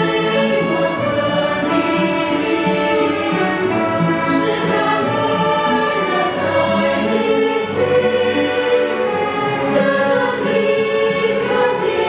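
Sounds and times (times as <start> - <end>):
choir singing a hymn: 0.0 - 12.0
violins and cello: 0.0 - 12.0.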